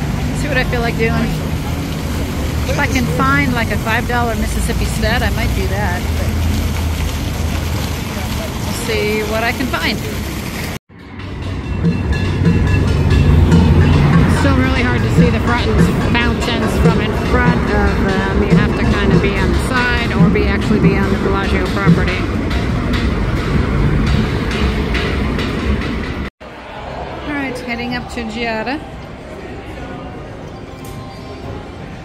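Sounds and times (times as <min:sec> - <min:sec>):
fountain jets splashing into pool: 0:00.0 - 0:10.8, 0:13.3 - 0:23.0
passing cars rumble: 0:00.0 - 0:30.4.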